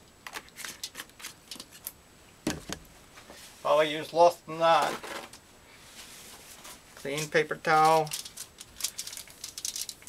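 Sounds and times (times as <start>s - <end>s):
plastic bottle crackling: 7.8s - 10.0s.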